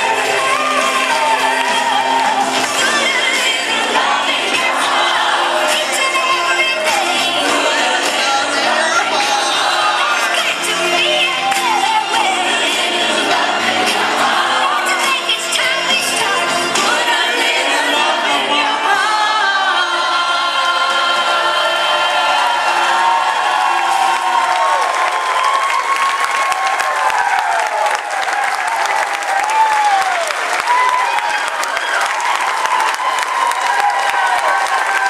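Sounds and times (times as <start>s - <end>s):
whoops and cheering: 0.0s - 3.1s, 22.4s - 35.0s
applause: 0.0s - 4.7s, 23.0s - 35.0s
group singing with accompaniment: 0.0s - 24.0s.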